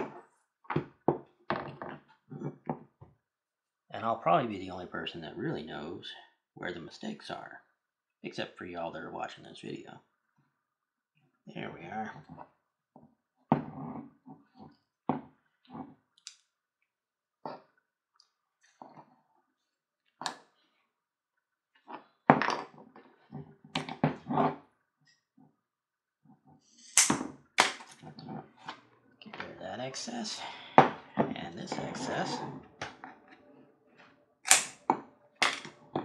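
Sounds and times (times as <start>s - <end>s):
leather lace rubbing and knocking: 21.8s - 24.6s.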